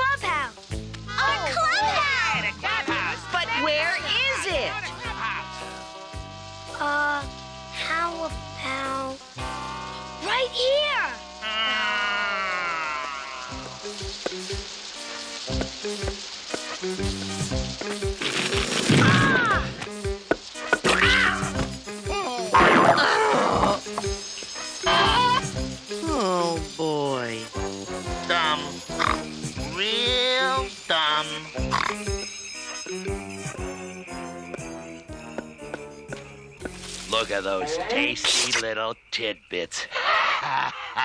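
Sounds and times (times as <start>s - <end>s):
cartoon underscore music: 0.0s - 39.3s
steady hiss: 0.0s - 41.0s
falling cartoon cry: 11.4s - 13.6s, 19.0s - 19.8s.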